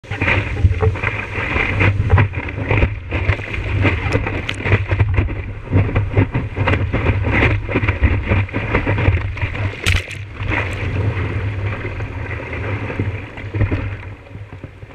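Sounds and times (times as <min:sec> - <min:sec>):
wind buffeting microphone: 0:00.0 - 0:14.7
water rushing against surfboard: 0:00.0 - 0:14.9
small splashes and knocks: 0:00.2 - 0:11.1.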